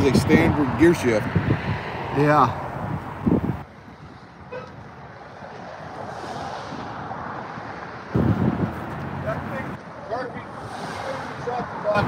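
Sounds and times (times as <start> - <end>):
outdoor vehicle noise: 0.0 - 12.0
wind rumbling on microphone: 0.0 - 12.0.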